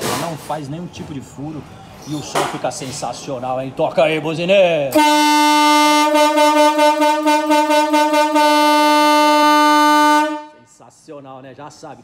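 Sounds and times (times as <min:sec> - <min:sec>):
horn blast: 0:04.9 - 0:10.7.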